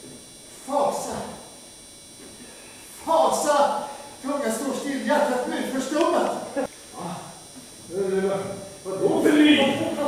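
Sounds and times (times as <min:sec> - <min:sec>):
actor speaking lines: 0:03.0 - 0:06.6.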